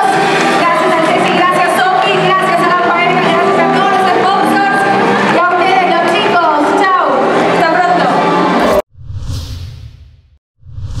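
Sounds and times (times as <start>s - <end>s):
whoosh: 8.6s - 11.0s.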